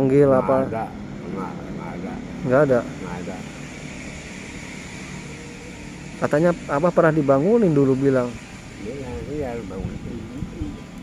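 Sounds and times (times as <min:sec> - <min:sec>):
hiss and low rumble: 0:00.0 - 0:11.0.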